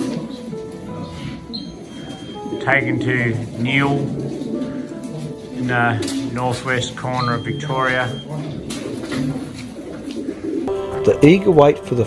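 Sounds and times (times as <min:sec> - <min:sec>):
pigeons cooing: 0:00.0 - 0:10.8.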